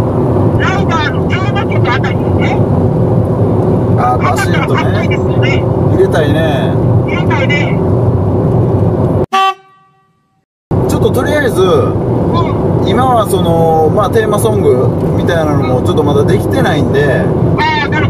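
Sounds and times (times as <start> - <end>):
people talking: 0.6 - 2.6, 4.0 - 7.8, 10.9 - 18.0
short horn toot: 9.3 - 10.4.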